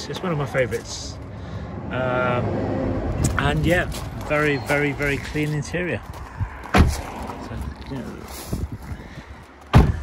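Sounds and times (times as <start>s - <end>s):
car door shutting thump: 6.7s - 7.0s, 9.7s - 10.0s.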